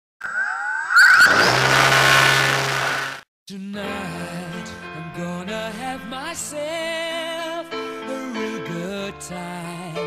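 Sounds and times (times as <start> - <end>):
electric motors whining: 0.2 - 3.2.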